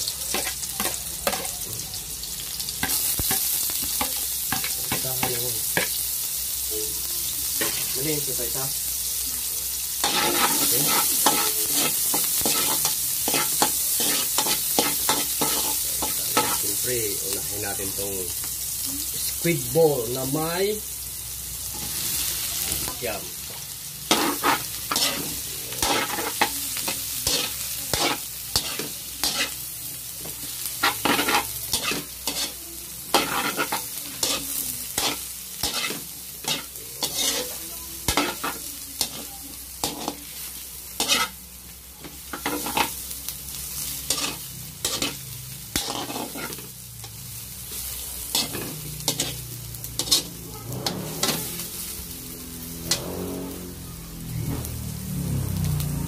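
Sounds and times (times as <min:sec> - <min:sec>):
food sizzling in hot oil: 0:00.0 - 0:56.0
metal spatula scraping a wok: 0:10.0 - 0:16.8, 0:24.0 - 0:41.4, 0:42.0 - 0:43.0, 0:43.6 - 0:53.8.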